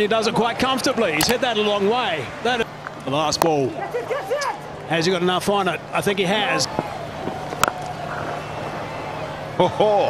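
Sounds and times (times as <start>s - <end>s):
low background hum: 0.0s - 10.0s
cricket bat hitting ball: 6.7s - 8.9s.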